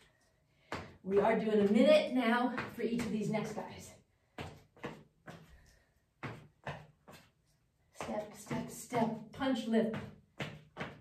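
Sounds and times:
footsteps on rubber flooring: 0:00.0 - 0:11.0.

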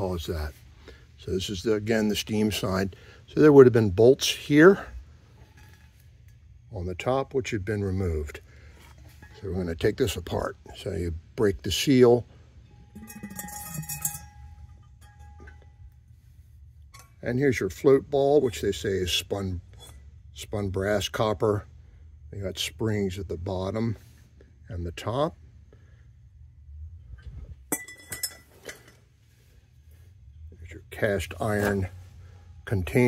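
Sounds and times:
faint metallic clinks: 0:12.6 - 0:17.3, 0:27.1 - 0:29.2
thin metallic ringing: 0:12.6 - 0:18.8, 0:27.7 - 0:29.0
metal parts clinking: 0:12.7 - 0:15.9.

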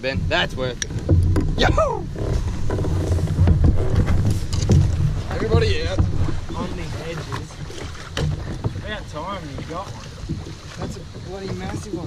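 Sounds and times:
wind on microphone: 0:00.0 - 0:12.0
sharp knocks: 0:00.8 - 0:08.9.

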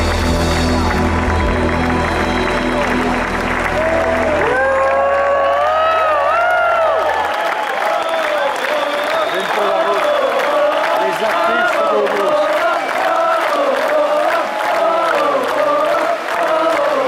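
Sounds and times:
rock band holding final chord: 0:00.0 - 0:05.3
crowd applauding and cheering: 0:00.0 - 0:17.0.

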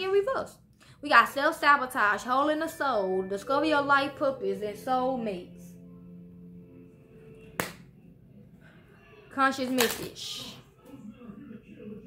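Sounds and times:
faint background music: 0:00.0 - 0:12.0
card deck snap: 0:07.6 - 0:07.9.

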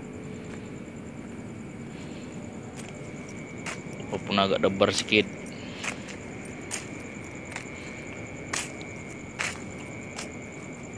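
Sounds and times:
faint high whine: 0:00.0 - 0:10.9
road rumble: 0:00.0 - 0:10.9.

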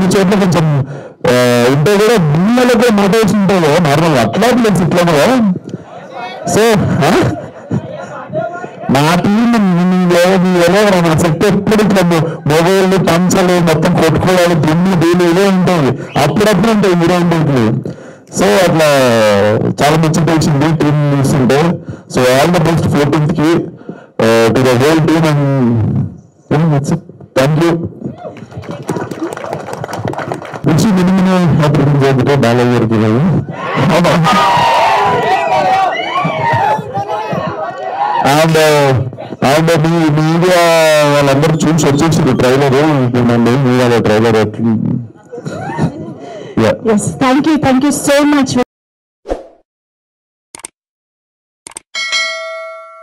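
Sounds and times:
man speaking through microphone: 0:00.0 - 0:28.2, 0:30.6 - 0:34.3, 0:38.2 - 0:45.1
murmuring voices: 0:05.5 - 0:09.8, 0:28.0 - 0:30.6, 0:33.4 - 0:38.2
hand claps: 0:28.3 - 0:30.7
quick clicks: 0:50.6 - 0:50.8, 0:51.7 - 0:51.9
bright notification ding: 0:52.0 - 0:53.0.

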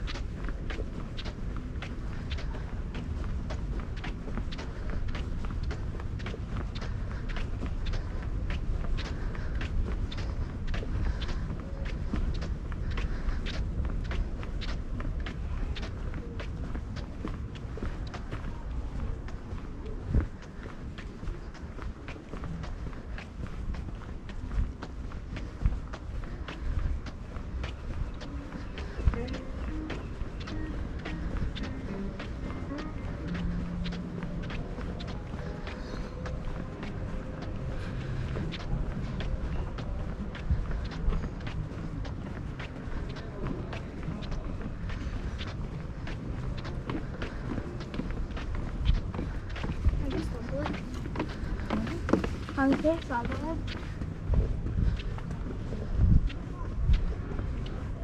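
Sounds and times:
faint voices: 0:00.0 - 0:58.0
footsteps on paved path: 0:00.0 - 0:58.0
street sounds: 0:00.0 - 0:58.0.

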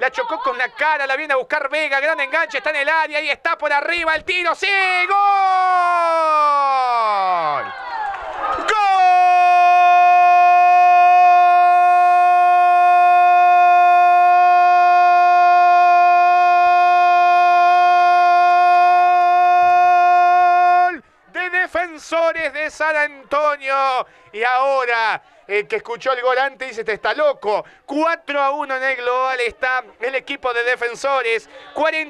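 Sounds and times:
male commentator shouting goal cry: 0:00.0 - 0:07.6, 0:08.6 - 0:32.0.

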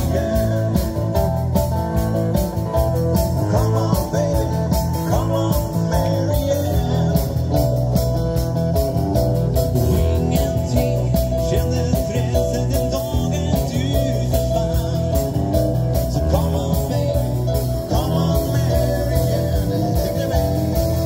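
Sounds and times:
live band playing through speakers: 0:00.0 - 0:21.0.

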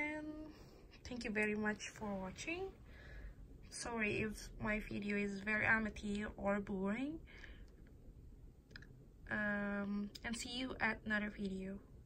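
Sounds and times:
woman breathing: 0:02.8 - 0:03.6, 0:07.2 - 0:07.8.

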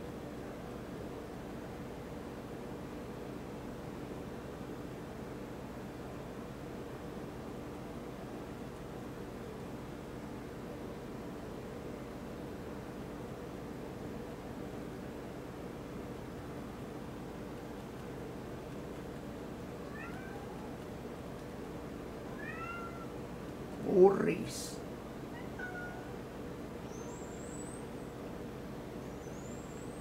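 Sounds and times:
low hum and hiss: 0:00.0 - 0:30.0
cat meowing: 0:19.9 - 0:20.7, 0:22.3 - 0:23.2, 0:25.3 - 0:26.2.

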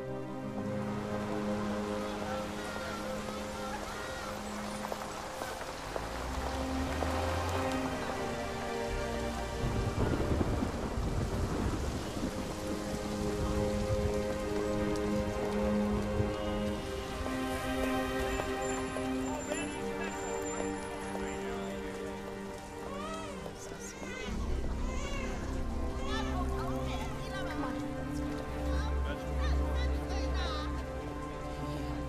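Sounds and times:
rain on a street: 0:00.0 - 0:32.0
soft orchestral score: 0:00.0 - 0:32.0.

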